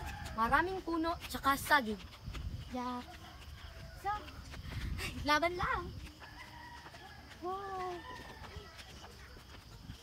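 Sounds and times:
distant rooster crowing: 0.0 - 0.8, 3.0 - 4.6, 6.2 - 9.3.

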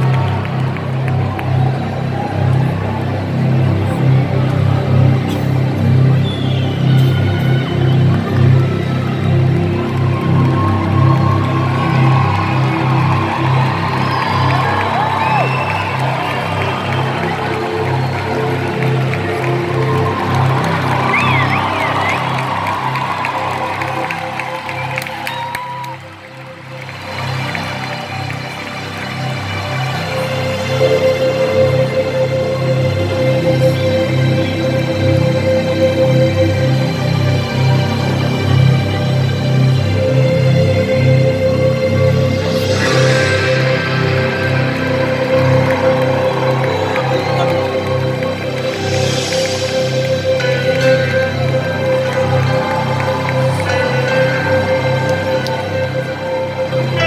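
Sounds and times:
crowd cheering and whistling: 0.0 - 3.4, 6.0 - 31.9, 42.5 - 57.0
live concert music with heavy bass: 0.0 - 57.0.

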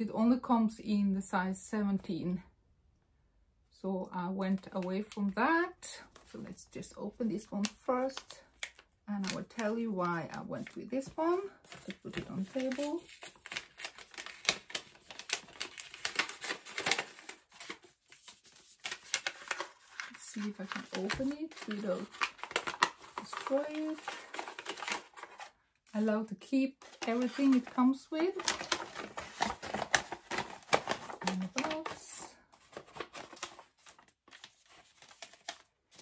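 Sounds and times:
paper rustling: 10.5 - 26.1, 26.8 - 36.0.

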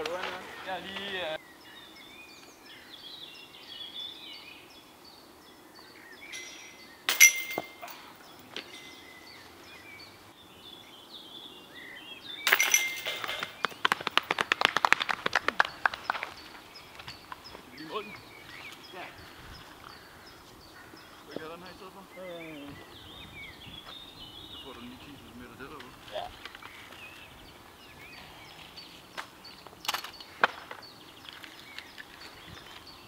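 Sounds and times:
birds singing: 0.0 - 33.0
disc clanking metal chains: 6.3 - 8.1, 12.5 - 13.6
chains jangling and clinking: 6.4 - 8.1, 12.5 - 13.5.

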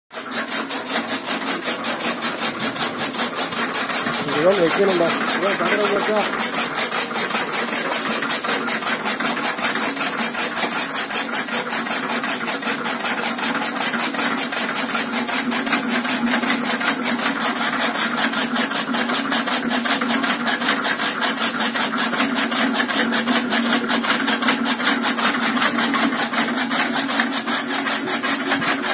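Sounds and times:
chaff cutter blades swishing: 0.2 - 19.3, 19.9 - 28.9
machine hum: 0.7 - 8.6.

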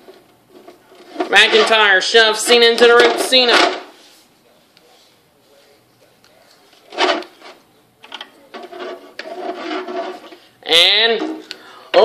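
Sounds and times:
plastic toy figures rubbing: 0.0 - 1.9, 6.8 - 7.6, 8.5 - 11.5.

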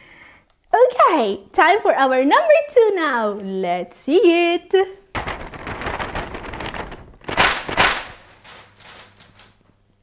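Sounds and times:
paper bag crinkling: 5.1 - 9.6.

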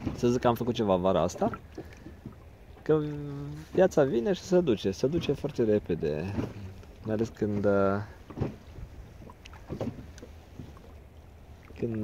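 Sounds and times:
water sounds: 0.0 - 12.0.

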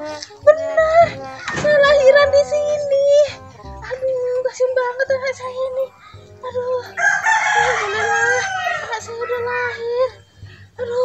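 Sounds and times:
rooster crowing: 6.9 - 10.3.

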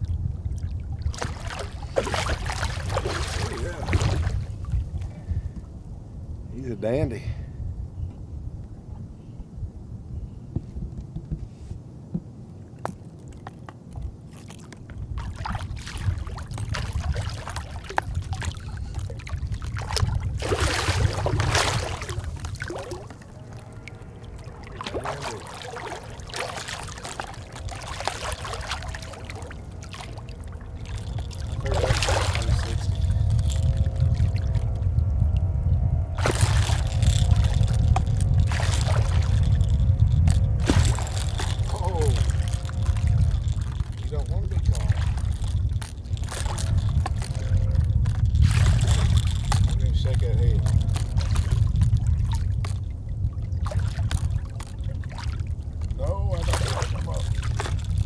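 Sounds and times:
faint steady hum: 0.0 - 58.0
steady low rumble: 0.0 - 58.0
fish splashing at water surface: 1.0 - 4.8, 14.4 - 34.6, 36.2 - 52.9, 53.6 - 58.0.

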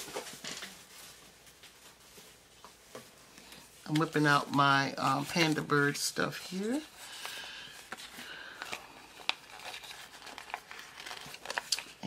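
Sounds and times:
sticker sheets rustling: 3.9 - 12.0
sharp paper crackles: 6.8 - 12.0.

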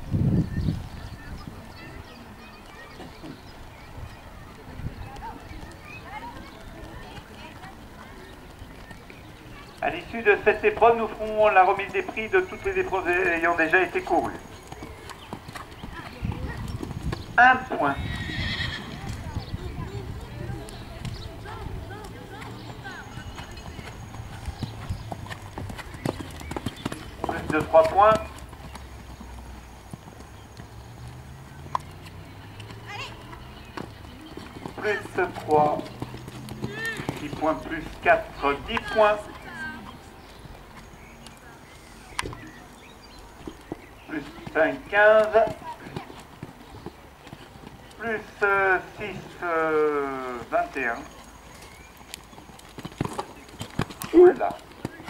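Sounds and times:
hoofbeats on sand: 0.6 - 55.0.

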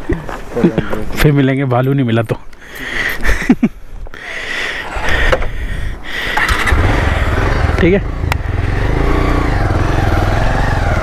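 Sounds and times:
motorcycle engine starting and idling: 6.2 - 11.0.

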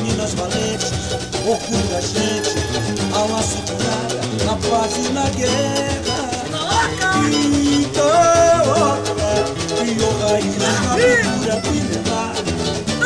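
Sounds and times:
person singing: 0.0 - 13.0
samba band accompaniment: 0.0 - 13.0.

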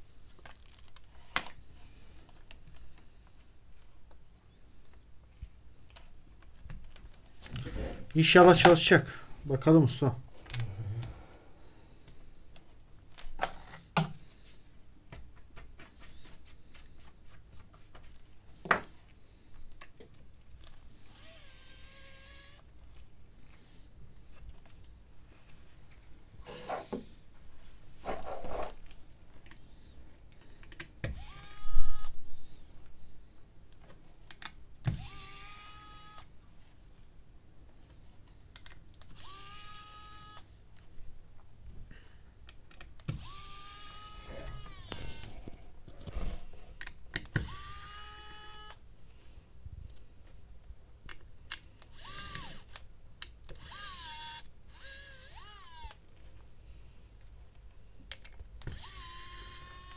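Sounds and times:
electric screwdriver whirring: 21.1 - 22.7, 31.1 - 32.2, 34.9 - 36.3, 39.2 - 40.5, 43.1 - 45.4, 47.4 - 48.8, 51.9 - 52.8, 53.6 - 56.0, 58.6 - 59.9.

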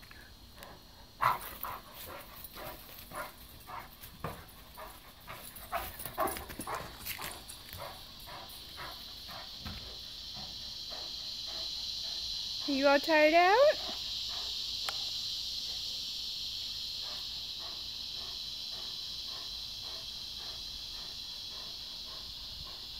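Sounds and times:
high insect drone: 0.0 - 22.9
dog panting: 0.5 - 16.0, 16.8 - 22.9.

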